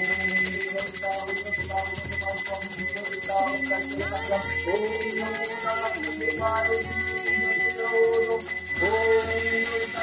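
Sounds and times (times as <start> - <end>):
bell ringing: 0.0 - 10.0
devotional music: 2.8 - 10.0.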